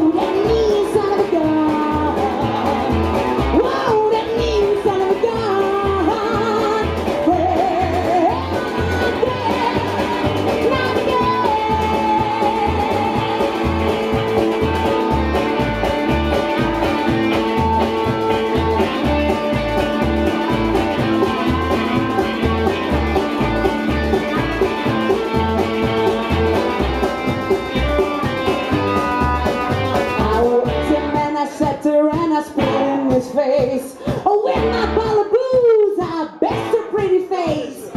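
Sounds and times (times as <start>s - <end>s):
electric guitar melody: 0.0s - 35.4s
drums: 0.0s - 37.9s
upright bass: 0.0s - 37.9s.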